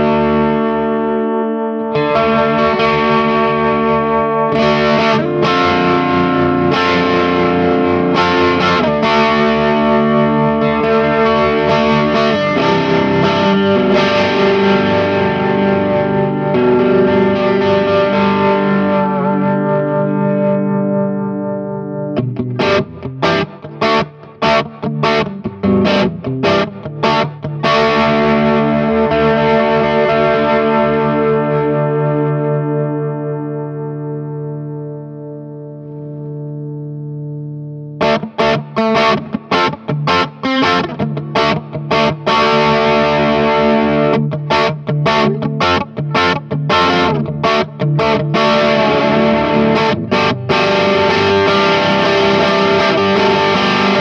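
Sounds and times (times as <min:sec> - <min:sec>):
distorted electric guitar chords: 0:00.0 - 0:54.0.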